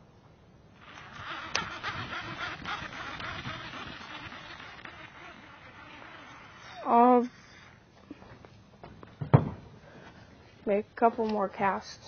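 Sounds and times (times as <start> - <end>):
fishing reel whirring: 0.8 - 7.8.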